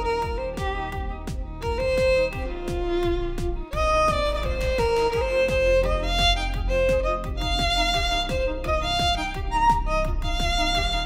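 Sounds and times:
electronic drum beat: 0.0s - 11.0s
violin melody: 0.0s - 11.0s.

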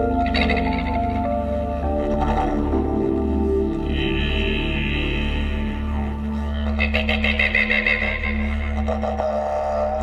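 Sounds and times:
didgeridoo drone: 0.0s - 10.0s.

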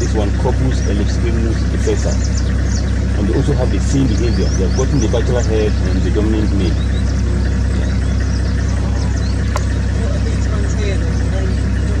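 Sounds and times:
bird chirps: 0.0s - 10.0s
vehicle engine idling: 0.0s - 12.0s.

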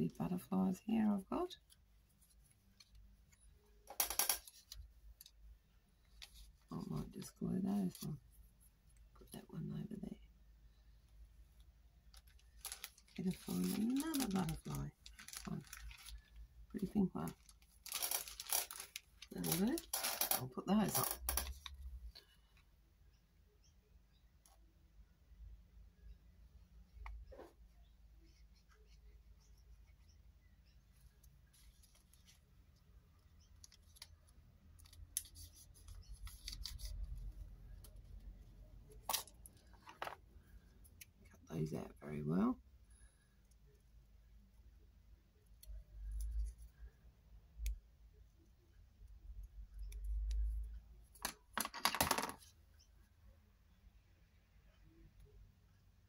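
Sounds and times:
plastic bottle ticks and rustles: 12.1s - 16.4s, 17.3s - 20.2s.

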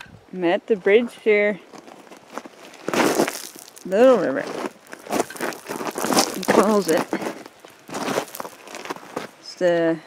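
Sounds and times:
footsteps crunching on gravel: 1.3s - 9.4s.

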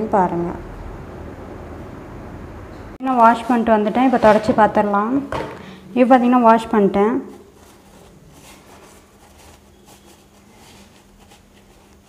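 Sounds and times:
tissue rustling on wet hand: 7.4s - 12.0s.

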